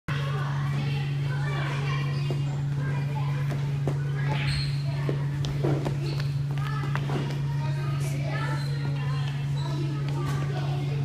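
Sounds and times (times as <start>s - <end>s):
loud steady low hum: 0.1s - 11.0s
young children chattering: 0.1s - 11.0s.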